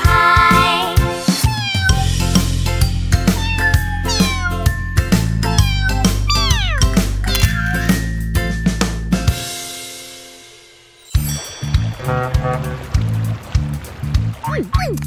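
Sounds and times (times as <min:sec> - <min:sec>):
bouncy children's song instrumental: 0:00.0 - 0:13.3
cartoon cat meows: 0:01.4 - 0:02.2, 0:03.3 - 0:04.8, 0:05.4 - 0:08.0.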